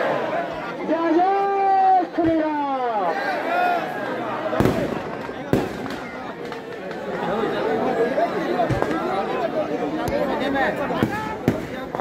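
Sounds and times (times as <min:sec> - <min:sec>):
crowd shouting and chattering: 0:00.0 - 0:12.0
firecracker bangs: 0:04.6 - 0:06.5, 0:11.0 - 0:12.0.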